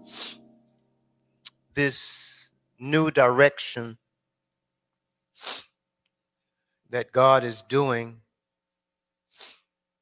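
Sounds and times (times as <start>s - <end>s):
sharp breath close to microphone: 0.0s - 0.5s, 5.4s - 5.8s, 9.4s - 9.7s.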